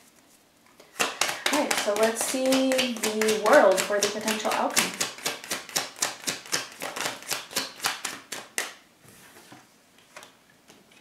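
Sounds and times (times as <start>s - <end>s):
cards being shuffled: 0.1s - 8.8s.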